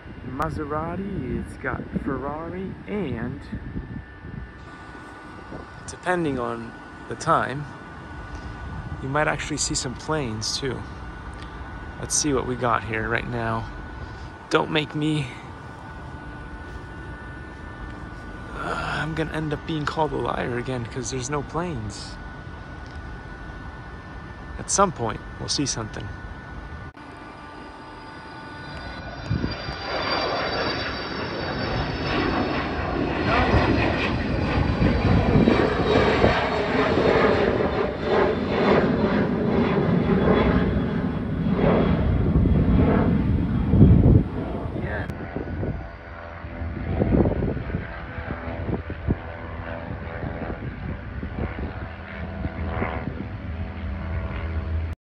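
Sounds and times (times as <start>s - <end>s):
airplane passing overhead: 0.0s - 55.0s.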